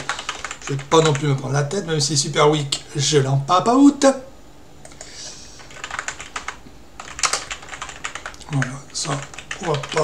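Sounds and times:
typing on a keyboard: 0.0 - 1.4, 5.6 - 10.0.

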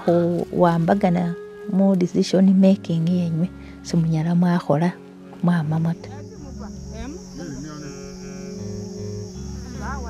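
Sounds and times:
insects trilling: 0.0 - 10.0
soft background music: 0.0 - 10.0.

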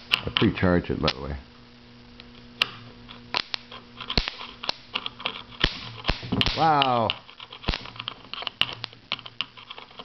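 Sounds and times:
faint electrical hum: 0.0 - 10.0
sparks snapping: 2.1 - 9.5.

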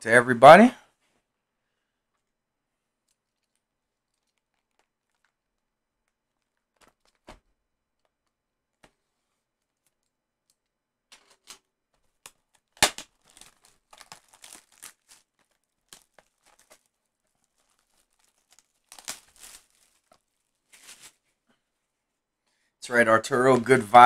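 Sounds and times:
plastic shrink wrap tearing: 12.5 - 21.2.

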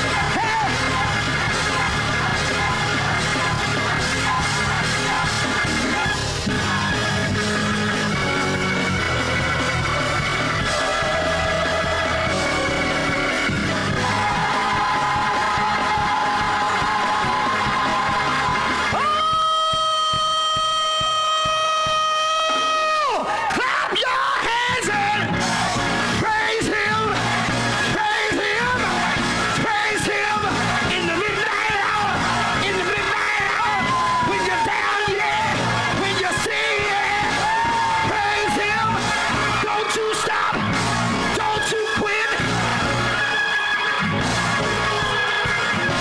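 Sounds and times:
slowed gospel music with drum beat: 0.0 - 23.4, 24.6 - 46.0
person yelling and singing: 0.1 - 1.1, 19.0 - 25.3, 29.6 - 40.6.

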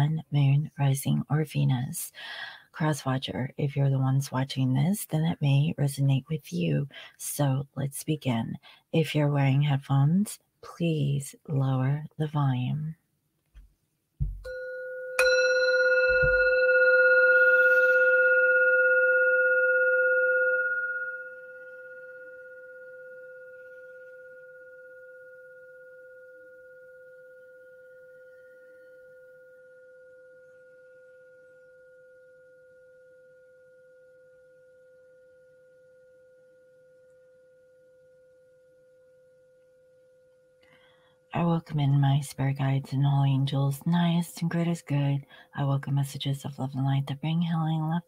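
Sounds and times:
singing bowl ringing: 14.4 - 41.3.

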